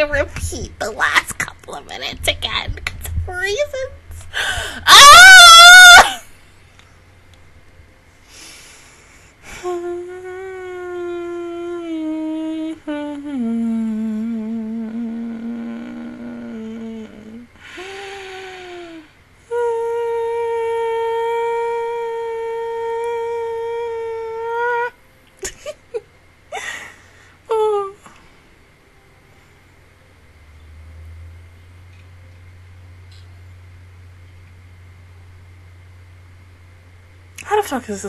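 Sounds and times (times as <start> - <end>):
breaths: 4.3 - 4.9, 8.2 - 9.7, 17.6 - 19.0, 26.5 - 27.4
woman humming held notes: 9.5 - 25.0.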